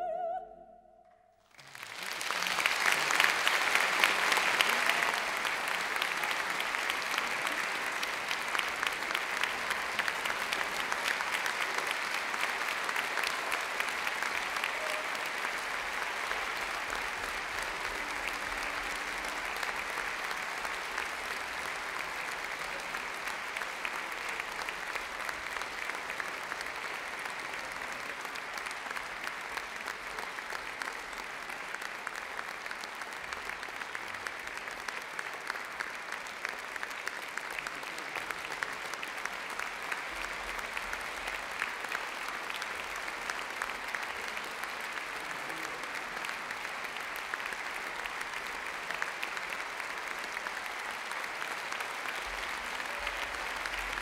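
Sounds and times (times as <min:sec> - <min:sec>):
audience applauding: 0:01.4 - 0:54.0.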